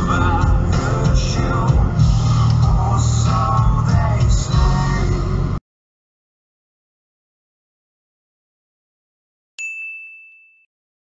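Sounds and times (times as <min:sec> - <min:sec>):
bright chime ding: 0:09.6 - 0:10.7.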